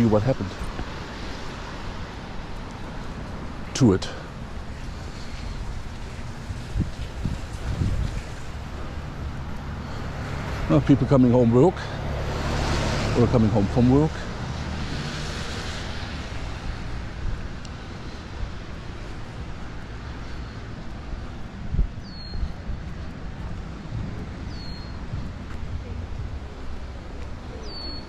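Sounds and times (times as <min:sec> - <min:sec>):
car tyres hissing on wet road: 0:00.8 - 0:21.0
wind on microphone: 0:04.7 - 0:09.7, 0:14.6 - 0:28.0
bird chirping: 0:22.0 - 0:22.6, 0:24.5 - 0:25.1, 0:27.6 - 0:28.0.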